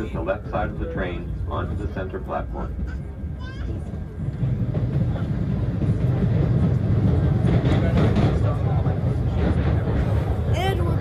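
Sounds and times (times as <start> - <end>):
subway train wheels rumbling: 0.0 - 11.0.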